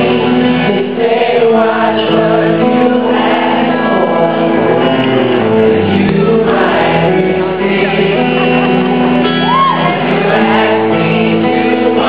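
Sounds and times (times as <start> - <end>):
backing voices singing: 0.0 - 12.0
electric guitar and band: 0.0 - 12.0
woman singing: 5.8 - 12.0.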